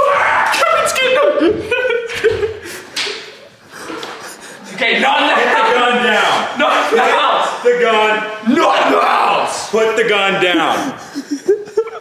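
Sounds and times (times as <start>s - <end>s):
loud voices: 0.0s - 12.0s.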